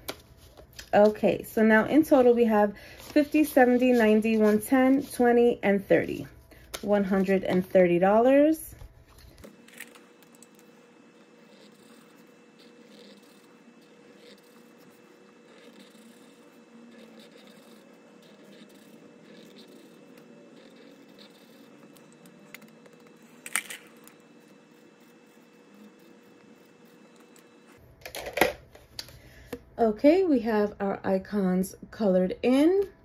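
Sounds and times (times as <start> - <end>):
marker scratching on paper: 3.0 - 5.3, 9.8 - 27.8.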